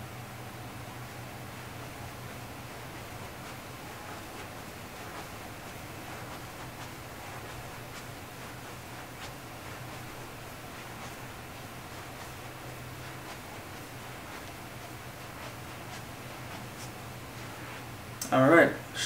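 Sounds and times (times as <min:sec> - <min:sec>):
faint low hum: 0:00.0 - 0:19.0
room tone hiss: 0:00.0 - 0:19.0.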